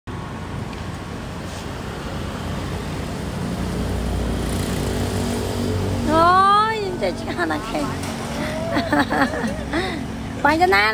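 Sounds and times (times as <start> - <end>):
road traffic rumble: 0.1 - 10.9.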